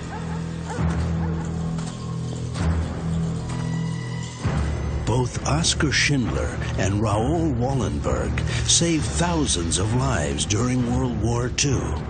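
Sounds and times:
dog barking: 0.0 - 1.4
low music drone: 0.0 - 12.0.

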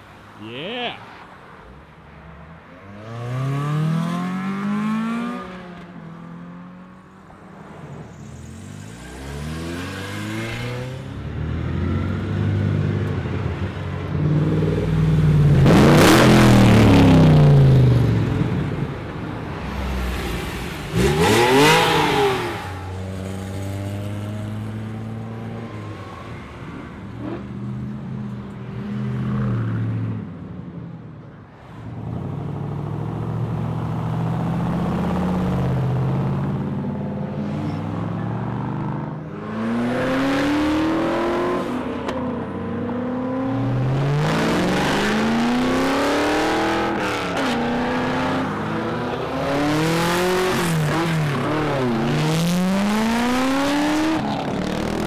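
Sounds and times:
cars accelerating past: 2.8 - 30.3, 31.7 - 55.0.

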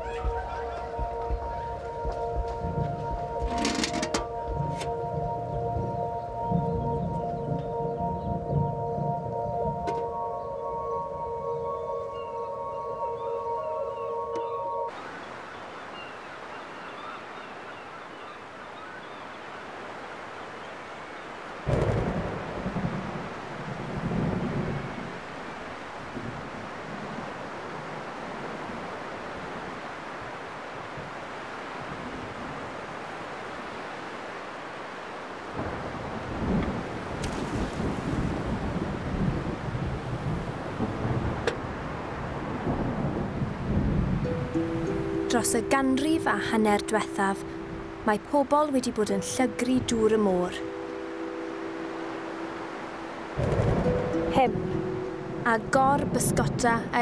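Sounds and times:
wind and surf rushing: 0.0 - 57.0
rolling thunder rumbles: 21.6 - 25.3, 35.5 - 44.5, 53.4 - 57.0
thunder clap: 21.7 - 24.8, 53.4 - 54.2.

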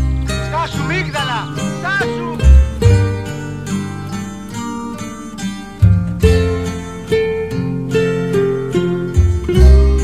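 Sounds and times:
bass line: 0.0 - 3.7, 9.2 - 10.0
plucked string melody: 0.0 - 10.0.

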